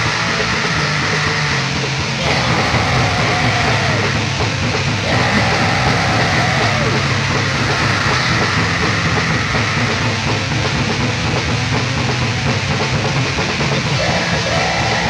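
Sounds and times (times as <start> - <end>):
distorted black metal band: 0.0 - 15.0.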